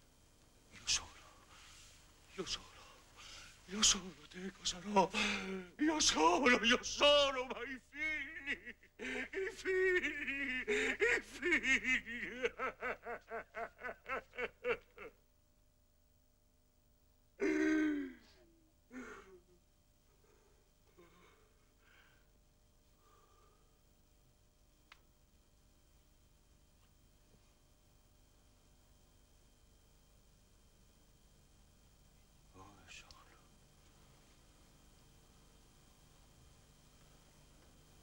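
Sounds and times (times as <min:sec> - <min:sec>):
faint hiss with low hum: 0:00.0 - 0:38.0
whispered word: 0:00.7 - 0:01.5, 0:32.6 - 0:33.6
man crying out in anguish: 0:07.0 - 0:15.1.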